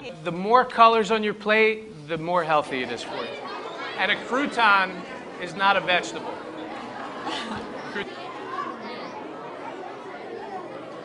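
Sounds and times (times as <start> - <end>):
children's voices chattering: 0.0 - 1.6, 2.2 - 11.0.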